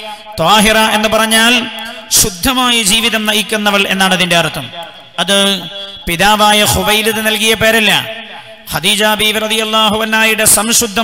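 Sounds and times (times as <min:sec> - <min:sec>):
man preaching in sing-song chant: 0:00.0 - 0:11.0.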